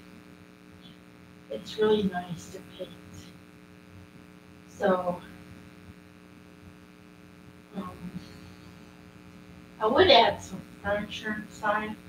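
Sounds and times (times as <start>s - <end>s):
low electrical hum: 0.0s - 12.0s
person speaking: 1.5s - 3.2s, 4.8s - 5.3s, 7.8s - 8.8s, 9.8s - 12.0s
murmured vocal sound: 7.8s - 8.9s.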